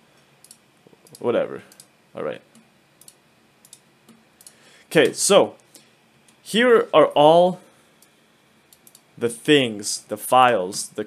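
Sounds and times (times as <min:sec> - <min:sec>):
computer mouse clicks: 0:00.4 - 0:01.9, 0:02.5 - 0:05.7, 0:08.0 - 0:09.1.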